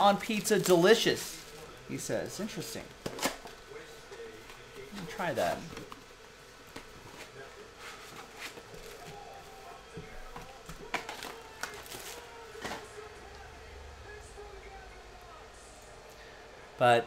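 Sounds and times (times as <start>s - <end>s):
wrappers and cardboard crinkling: 6.8s - 13.0s
card packs clicking and tapping: 10.0s - 13.0s.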